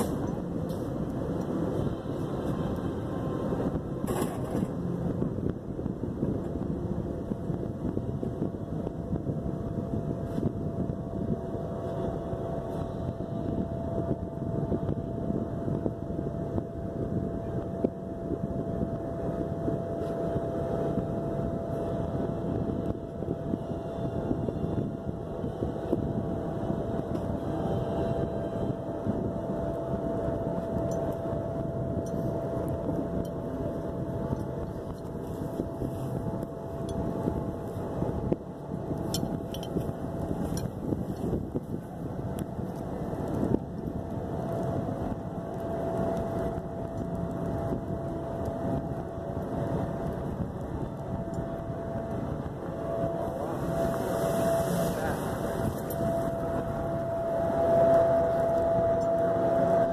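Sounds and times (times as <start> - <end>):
electric blower droning: 50.6 - 59.9.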